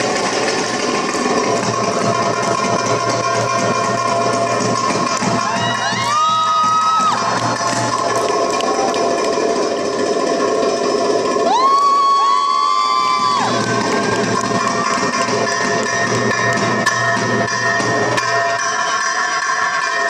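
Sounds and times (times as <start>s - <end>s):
audience whooping: 5.0s - 10.0s, 11.4s - 16.6s.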